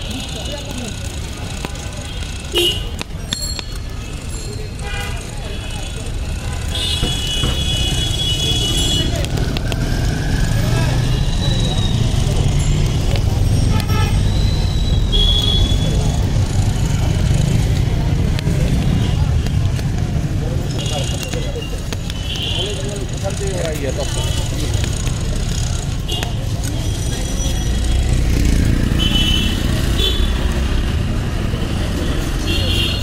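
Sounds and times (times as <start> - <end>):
rumble of passing vehicles: 0.0 - 33.0
vehicle horn toots: 6.6 - 9.2, 15.1 - 15.9.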